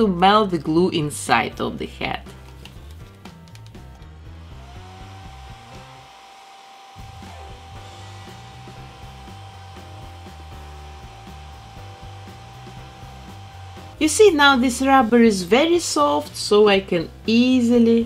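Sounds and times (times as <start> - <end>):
hair dryer blowing: 3.8 - 16.6.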